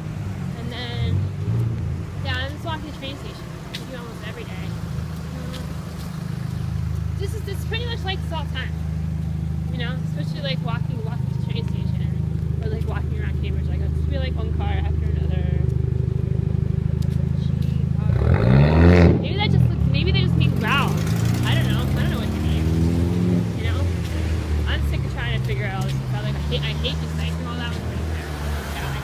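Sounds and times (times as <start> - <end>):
engines accelerating: 0.0 - 29.0
steady engine hum: 0.0 - 29.0
vehicle passing close: 0.0 - 29.0.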